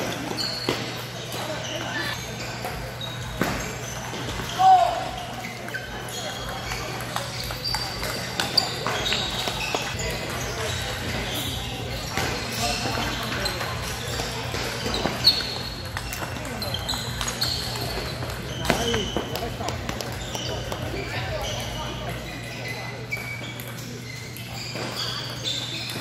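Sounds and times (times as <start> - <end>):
murmur of voices: 0.0 - 26.0
table tennis balls clicking: 5.5 - 10.4, 11.9 - 22.4.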